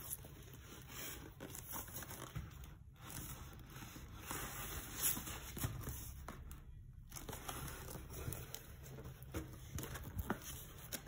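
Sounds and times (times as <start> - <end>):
plastic film rustling: 0.0 - 11.0.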